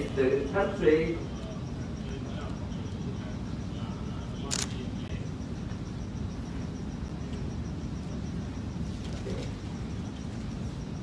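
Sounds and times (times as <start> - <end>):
low room hum: 0.0 - 11.0
sharp click: 4.5 - 4.8.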